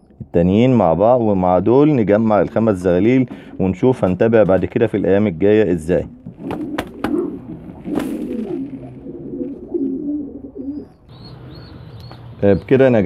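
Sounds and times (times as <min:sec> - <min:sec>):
pigeons cooing: 0:05.9 - 0:12.3.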